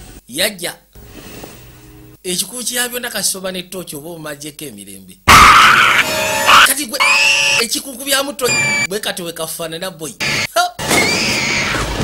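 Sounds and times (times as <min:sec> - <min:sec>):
woman screaming: 0:05.3 - 0:07.6, 0:10.3 - 0:11.8.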